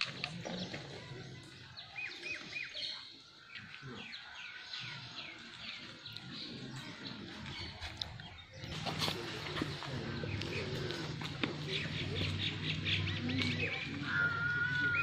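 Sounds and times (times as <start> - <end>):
birds chirping: 0.0 - 15.0.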